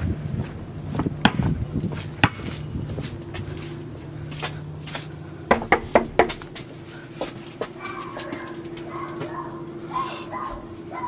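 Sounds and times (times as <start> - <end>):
dog whining: 7.8 - 11.0.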